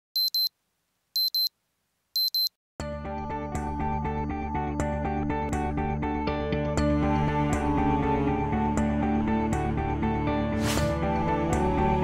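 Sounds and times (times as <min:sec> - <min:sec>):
short high electronic beeps: 0:00.2 - 0:00.5, 0:01.2 - 0:01.5, 0:02.2 - 0:02.5.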